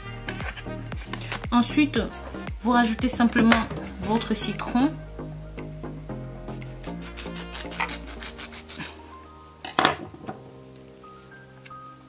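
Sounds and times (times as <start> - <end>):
background music: 0.0 - 12.0
knife sawing through lime: 6.6 - 9.0.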